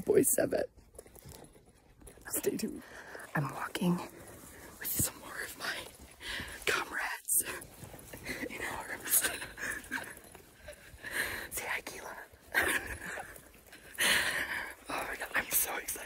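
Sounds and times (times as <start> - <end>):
people whispering: 2.2 - 13.3, 13.9 - 16.0.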